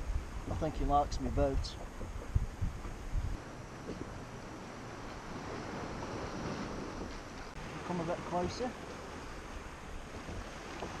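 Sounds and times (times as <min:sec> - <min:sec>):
sea water washing around kayak: 0:00.0 - 0:11.0
wind on microphone: 0:00.0 - 0:11.0.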